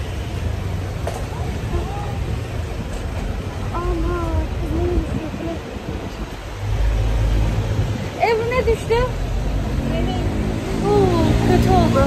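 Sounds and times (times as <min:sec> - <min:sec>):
vehicle rumble: 0:00.0 - 0:12.0.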